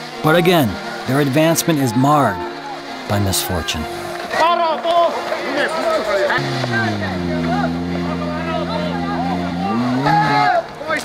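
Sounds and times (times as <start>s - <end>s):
rally car engine revving: 0.0s - 11.0s
people calling out: 0.2s - 11.0s.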